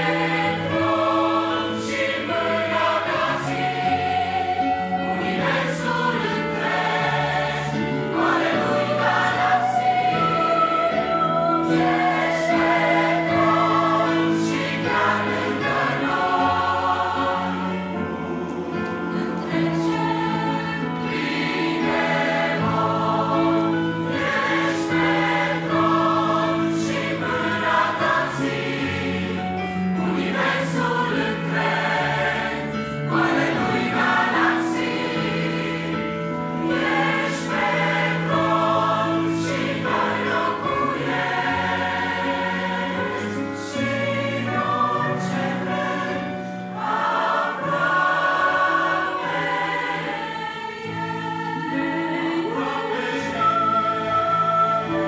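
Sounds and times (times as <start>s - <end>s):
choir singing: 0.0s - 55.0s
electric piano: 0.0s - 55.0s.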